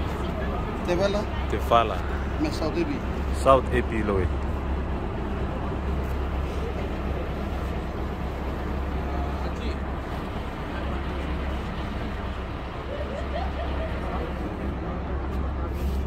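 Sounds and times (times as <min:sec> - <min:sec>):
motor boat engine rumble: 0:00.0 - 0:16.0
water noise: 0:00.0 - 0:16.0.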